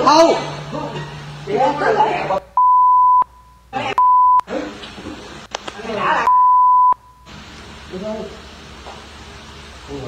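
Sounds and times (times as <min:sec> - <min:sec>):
voices arguing: 0:00.0 - 0:02.5
censor beep: 0:02.6 - 0:04.5, 0:06.2 - 0:07.3.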